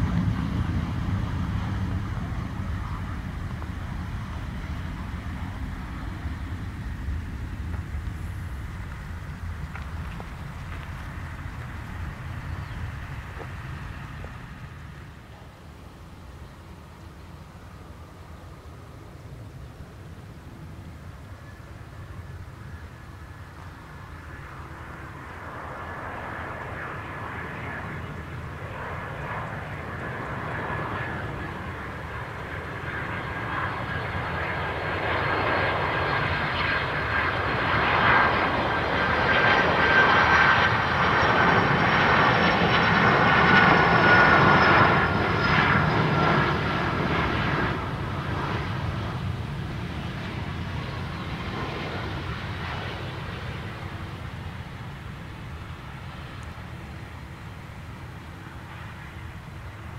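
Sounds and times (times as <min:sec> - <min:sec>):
jet engines whining and rumbling: 0:00.0 - 0:59.9.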